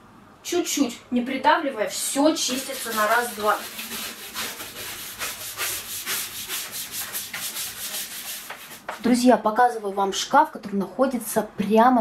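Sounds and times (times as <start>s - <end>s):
brush scrubbing steel sink: 2.2s - 9.1s.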